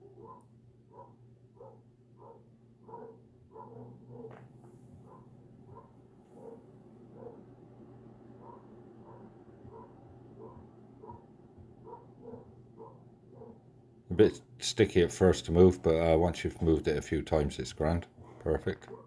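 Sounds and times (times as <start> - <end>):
distant dogs barking: 0.0 - 4.4, 5.0 - 7.5, 8.4 - 13.7
low steady hum: 0.0 - 19.0.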